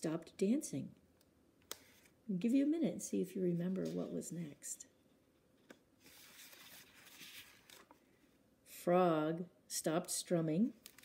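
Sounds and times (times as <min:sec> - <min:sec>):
book page turning: 0:03.7 - 0:04.2, 0:05.6 - 0:08.0, 0:10.8 - 0:11.0.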